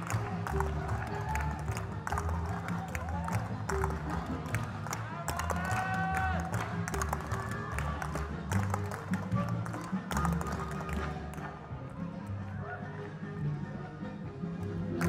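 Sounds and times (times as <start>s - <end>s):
music with steady beat: 0.0s - 12.4s.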